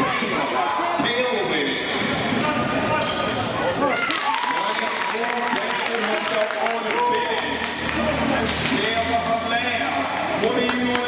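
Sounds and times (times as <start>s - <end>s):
people shouting and talking: 0.0s - 11.0s.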